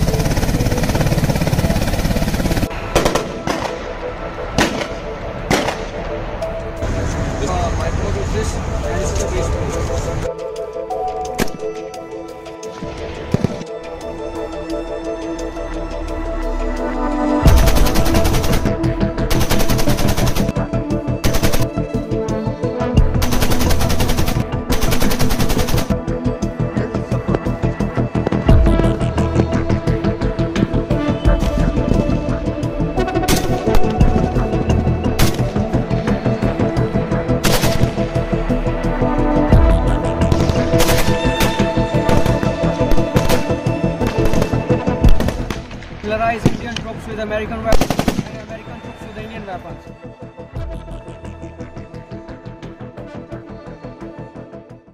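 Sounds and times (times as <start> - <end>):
machine gun firing bursts: 0.0 - 3.8, 17.6 - 20.5, 21.2 - 21.7, 23.2 - 25.9, 47.7 - 48.3
background music: 0.0 - 54.9
rifle shots: 4.6 - 5.9, 47.7 - 48.4.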